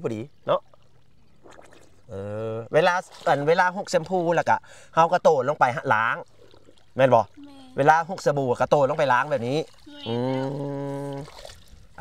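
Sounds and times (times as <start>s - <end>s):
water sloshing from swimming: 0.0s - 12.0s
man speaking: 7.0s - 11.3s.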